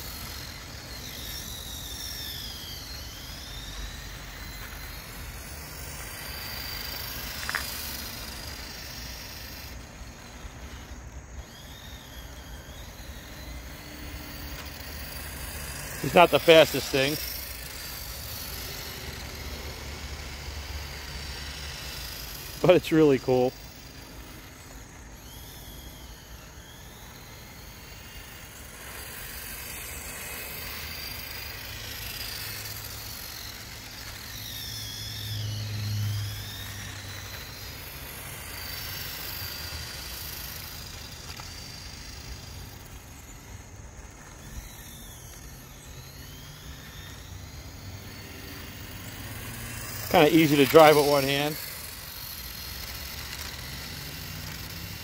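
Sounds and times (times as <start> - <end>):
toy electric motor whining: 0.0 - 55.0.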